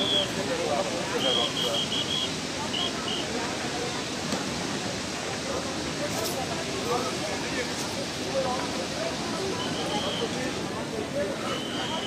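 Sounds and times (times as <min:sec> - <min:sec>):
faint distant voices: 0:00.0 - 0:12.0
river rushing: 0:00.0 - 0:12.0.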